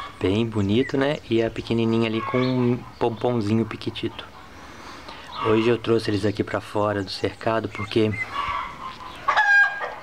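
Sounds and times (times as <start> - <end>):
fowl calling: 1.8 - 10.0.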